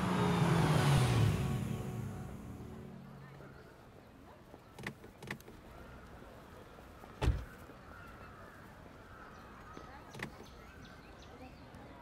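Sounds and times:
car engine slowing to a stop: 0.0 - 2.8.

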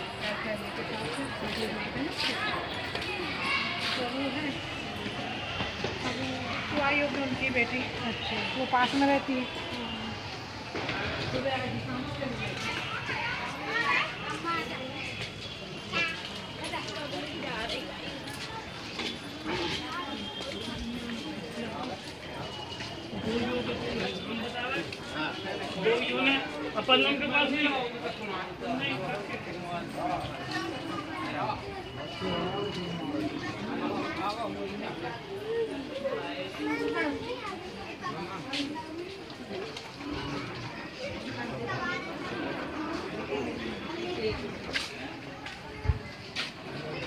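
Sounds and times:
indistinct chatter of people: 0.0 - 47.0
people talking over one another: 0.0 - 47.0.

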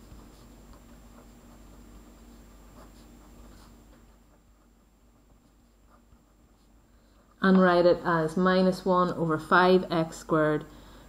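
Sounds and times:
pen scratching on paper: 0.0 - 6.8.

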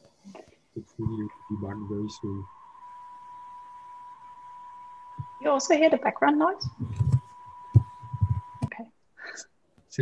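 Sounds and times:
low hiss: 0.0 - 10.0
steady faint whistle tone: 0.8 - 8.8.

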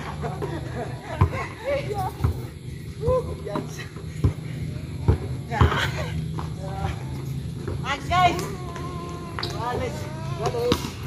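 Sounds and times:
basketball bouncing on grass: 2.2 - 2.5, 3.6 - 5.8.

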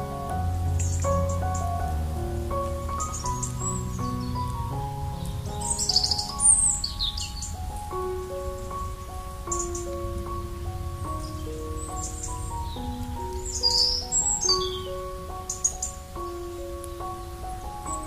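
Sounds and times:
soft slow piano music: 0.0 - 18.0
songbirds chirping: 0.0 - 18.0.

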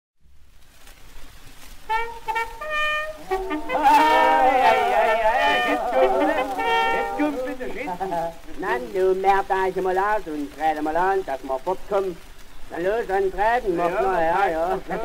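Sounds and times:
record surface hiss: 0.2 - 15.0
held brass notes: 1.8 - 9.4
men talking over one another: 3.2 - 15.0.

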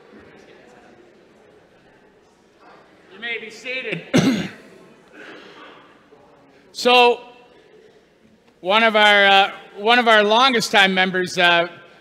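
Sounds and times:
person clearing throat: 4.1 - 5.9.

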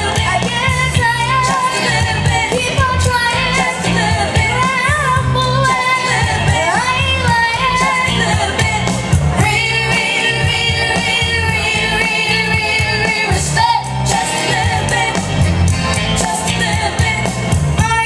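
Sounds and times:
girl singing into a microphone: 0.0 - 1.8, 2.6 - 8.5
instrumental accompaniment with bass: 0.0 - 18.0.

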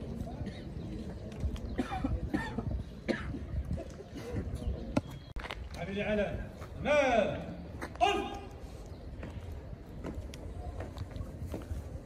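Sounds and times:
low background noise: 0.0 - 12.0
person coughing: 1.8 - 3.4.

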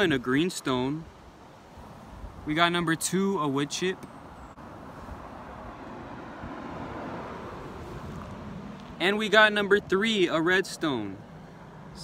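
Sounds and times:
road traffic rush: 0.0 - 12.0.

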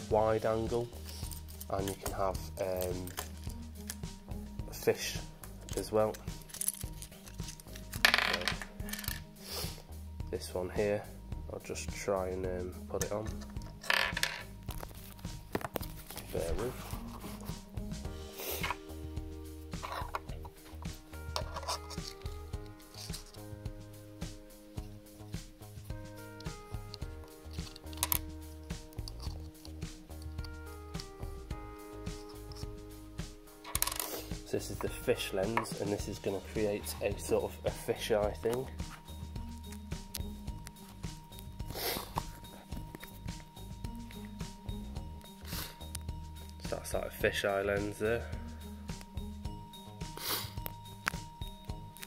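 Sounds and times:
background music: 0.0 - 52.0
scraping rub on phone: 16.7 - 17.6.

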